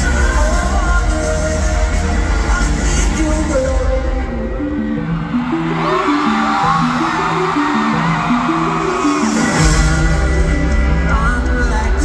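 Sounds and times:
drums and bass: 0.0 - 4.5, 8.2 - 12.0
crowd voices: 0.0 - 12.0.

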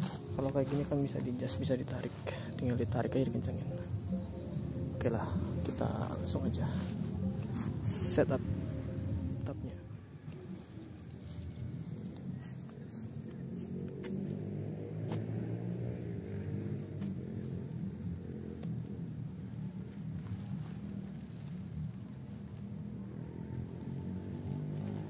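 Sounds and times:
tent fabric clicks and rustles: 0.0 - 1.5, 19.6 - 22.8
low engine rumble: 0.0 - 25.0.

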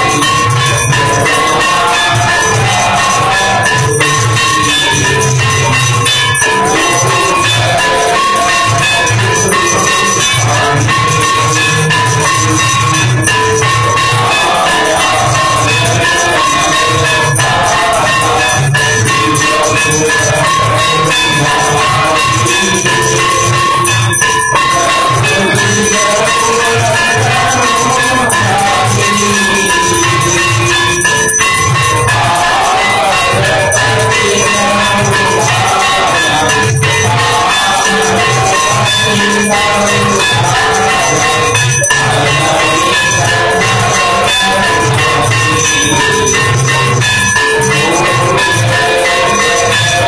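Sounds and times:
drums beating: 0.0 - 50.0
jingling cymbals: 0.0 - 50.0
ringing bells: 0.0 - 50.0.

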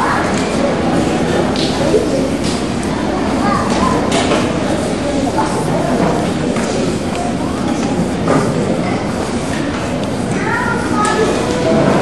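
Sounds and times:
babble of many voices: 0.0 - 12.0.

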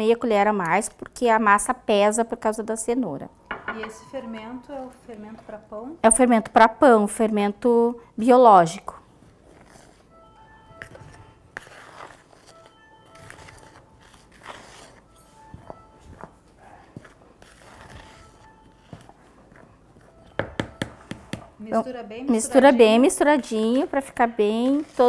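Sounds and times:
chime-like background music: 10.1 - 11.5, 12.4 - 14.1, 15.1 - 16.3, 20.0 - 22.6
spoon scraping in plastic bowl: 10.8 - 20.4, 23.5 - 25.0
spoon tapping: 20.0 - 21.6.

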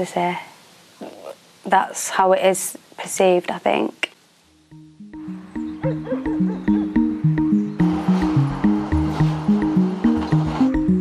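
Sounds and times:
pulsing low background music: 4.6 - 11.0.

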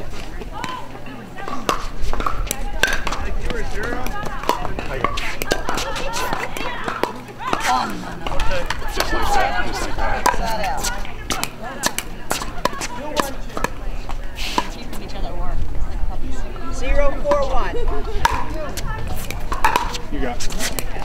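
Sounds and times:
paddles striking pickleball: 1.4 - 13.8, 18.2 - 21.0.

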